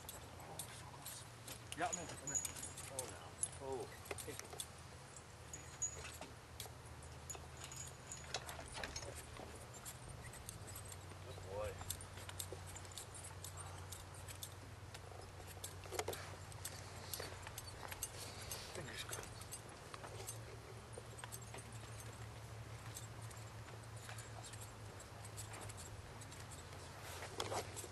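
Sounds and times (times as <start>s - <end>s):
harness chains and buckles jingling: 0.0s - 27.9s
steady low hum: 0.0s - 27.9s.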